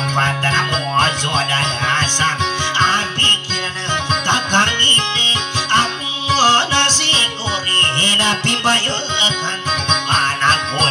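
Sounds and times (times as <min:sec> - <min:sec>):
acoustic guitar plucked rhythm: 0:00.0 - 0:10.9
wavering melody line: 0:00.5 - 0:10.9.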